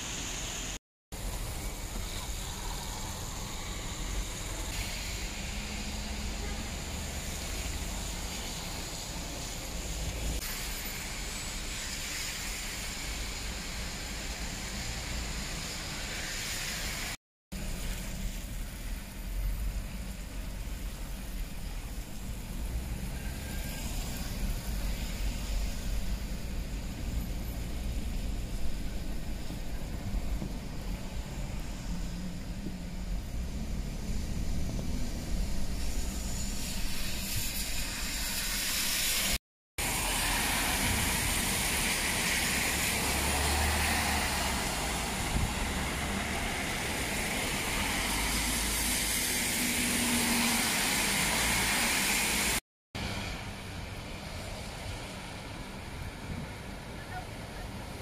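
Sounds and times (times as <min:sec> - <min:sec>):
tyres hissing on wet road: 0:00.0 - 0:58.0
low road rumble: 0:17.5 - 0:39.0, 0:39.8 - 0:51.7.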